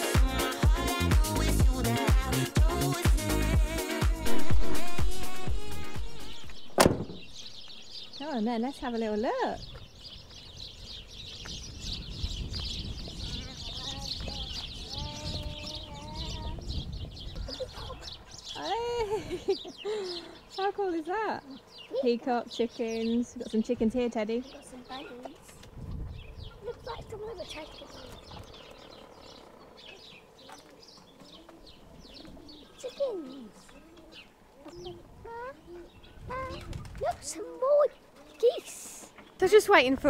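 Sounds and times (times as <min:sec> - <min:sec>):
small birds chirping: 0:05.3 - 0:40.0
chickens calling: 0:05.8 - 0:40.0.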